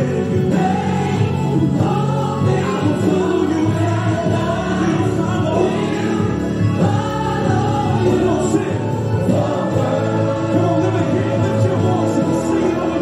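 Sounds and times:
gospel choir singing: 0:00.0 - 0:13.0.

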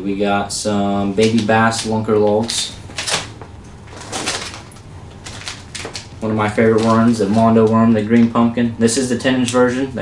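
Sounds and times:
plastic bags crinkling: 0:01.2 - 0:08.4.

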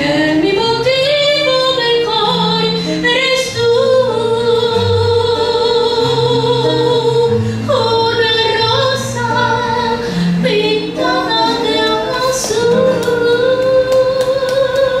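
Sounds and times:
acoustic guitar: 0:00.0 - 0:15.0
woman singing: 0:00.0 - 0:15.0.

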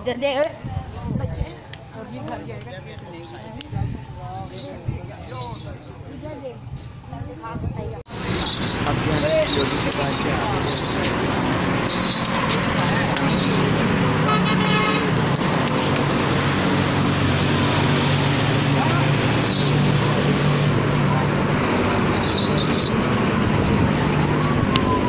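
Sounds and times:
vehicle traffic: 0:00.0 - 0:25.0
horn tooting: 0:11.8 - 0:15.4.

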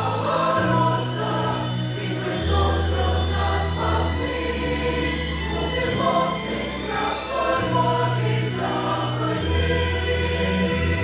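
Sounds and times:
choir singing a sacred song: 0:00.0 - 0:11.0.

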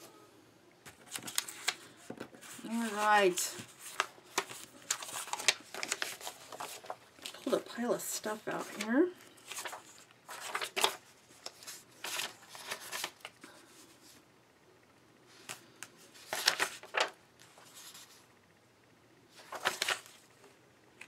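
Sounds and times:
paper pages rustling: 0:00.9 - 0:14.2, 0:15.3 - 0:18.2, 0:19.3 - 0:20.3.

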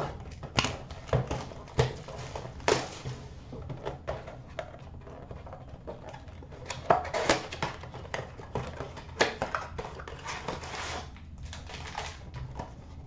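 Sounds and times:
crinkling and rustling: 0:00.0 - 0:13.0.

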